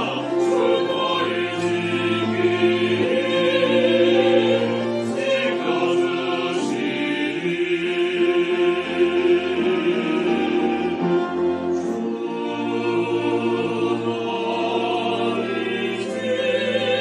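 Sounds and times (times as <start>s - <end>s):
choir singing a hymn: 0.0s - 17.0s
violin and cello: 0.0s - 17.0s.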